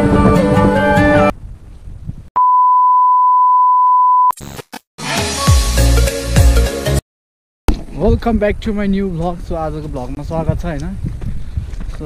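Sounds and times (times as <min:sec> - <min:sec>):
music: 0:00.0 - 0:01.3, 0:05.0 - 0:07.0
steady electronic beep: 0:02.4 - 0:04.3.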